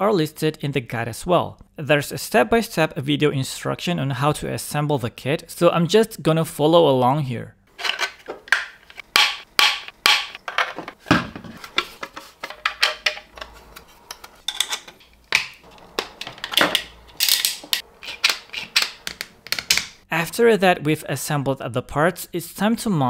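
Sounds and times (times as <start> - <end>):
plastic parts clicking and knocking: 7.8 - 20.0.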